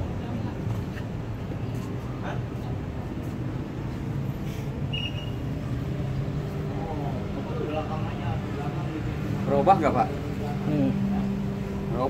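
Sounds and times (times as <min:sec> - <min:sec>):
machine hum: 0:05.4 - 0:12.0.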